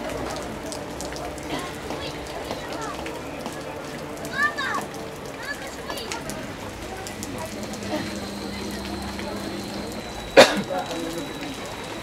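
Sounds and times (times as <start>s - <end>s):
rain on wet asphalt: 0.0s - 12.0s.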